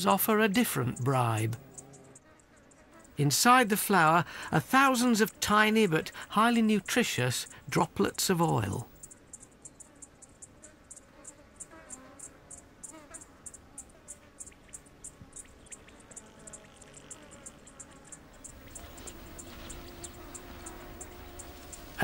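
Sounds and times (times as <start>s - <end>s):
insect chirping: 0.0s - 5.2s, 5.8s - 22.0s.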